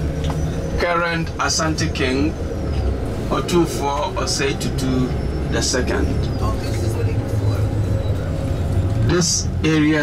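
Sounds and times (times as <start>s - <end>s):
bus engine and road rumble: 0.0s - 10.0s.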